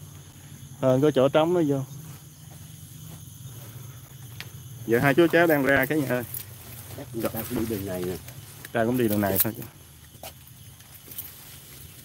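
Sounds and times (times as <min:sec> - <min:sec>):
crickets and insects chirping: 0:00.0 - 0:12.0.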